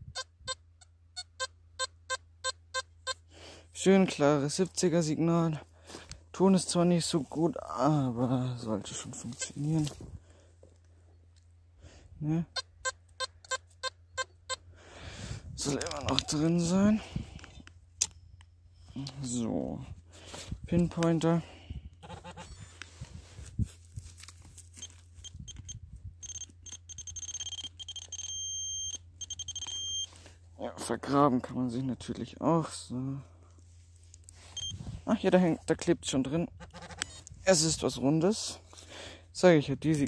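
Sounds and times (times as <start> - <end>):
metal detector beeping: 0.0 - 3.2, 12.5 - 14.6, 24.7 - 30.2, 34.4 - 34.8
soil scraping: 5.8 - 10.1.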